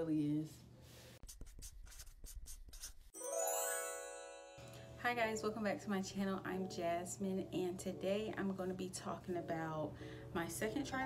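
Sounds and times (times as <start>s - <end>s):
pen scratching on paper: 1.2s - 3.1s
shimmering chime: 3.2s - 5.0s.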